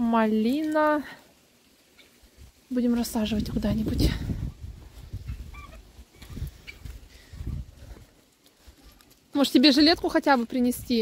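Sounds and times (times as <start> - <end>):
poultry calling: 1.9 - 2.2, 5.2 - 7.3
wind rumbling on microphone: 2.3 - 8.8, 9.8 - 11.0.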